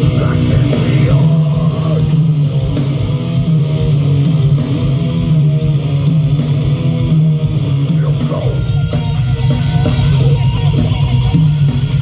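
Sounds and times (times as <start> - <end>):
bass guitar: 0.0 - 12.0
distorted electric guitars riffing: 0.0 - 12.0.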